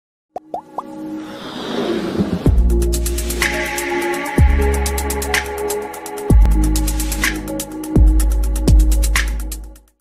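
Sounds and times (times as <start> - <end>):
rising plop blips: 0.4 - 0.9.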